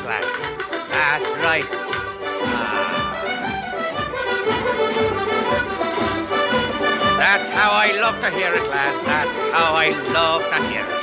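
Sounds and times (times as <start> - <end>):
folk band playing instrumental: 0.0 - 11.0.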